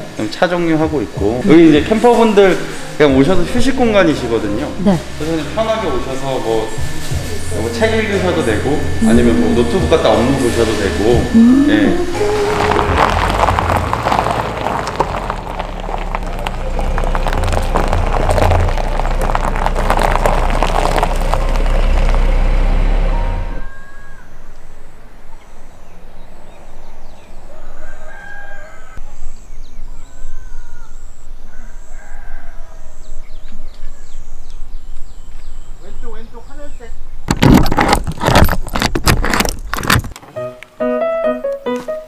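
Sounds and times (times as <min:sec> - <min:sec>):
loud rushing noise: 0:05.0 - 0:23.7
rooster crowing: 0:23.5 - 0:24.4, 0:27.4 - 0:29.1, 0:29.9 - 0:33.0.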